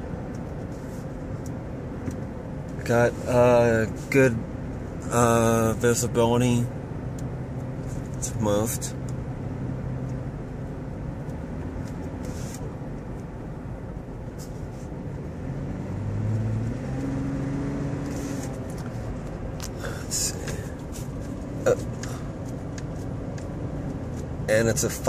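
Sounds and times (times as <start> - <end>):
car engine and road noise: 0.0 - 25.0.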